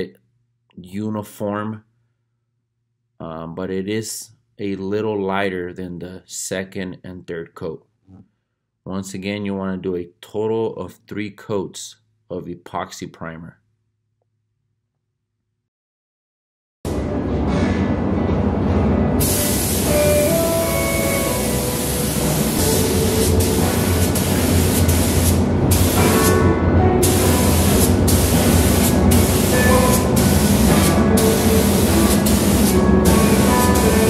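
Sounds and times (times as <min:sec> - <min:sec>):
background music: 0:16.9 - 0:24.3, 0:25.9 - 0:34.0
paint spray gun hissing: 0:19.2 - 0:26.3, 0:27.0 - 0:34.0.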